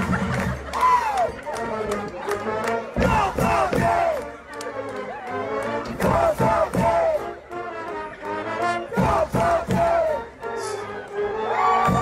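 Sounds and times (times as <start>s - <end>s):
crowd shouting a cheer: 0.0s - 2.3s, 2.9s - 4.3s, 6.0s - 7.3s, 8.9s - 12.0s.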